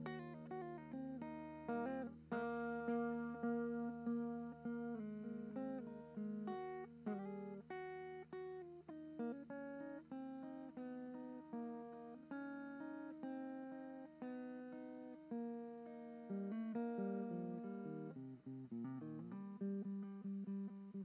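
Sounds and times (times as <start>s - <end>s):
plucked guitar melody: 0.0s - 21.0s.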